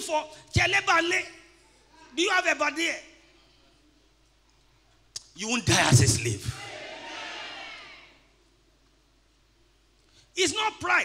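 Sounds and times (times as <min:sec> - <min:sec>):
echoing man's voice over pa: 0:00.0 - 0:01.6, 0:05.2 - 0:06.6.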